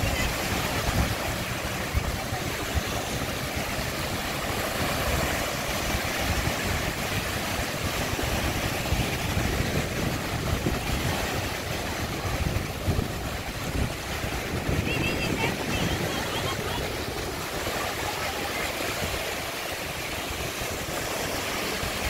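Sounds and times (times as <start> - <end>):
waves washing onto sandy beach: 0.0 - 22.0
wind buffeting microphone: 0.0 - 22.0.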